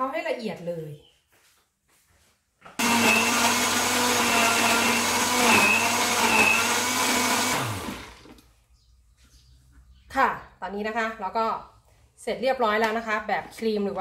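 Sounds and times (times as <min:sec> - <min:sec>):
blender running: 0:02.8 - 0:08.4.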